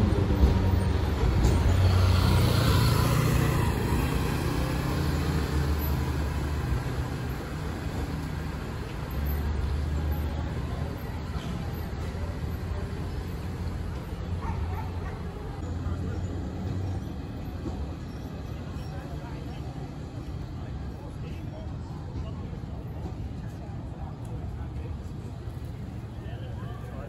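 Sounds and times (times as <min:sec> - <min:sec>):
traffic hum: 0:00.0 - 0:27.0
vehicle engine rumble: 0:00.0 - 0:27.0.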